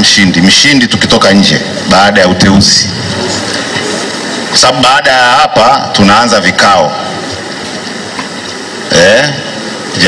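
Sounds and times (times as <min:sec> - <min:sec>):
hall background noise: 0:00.0 - 0:10.0.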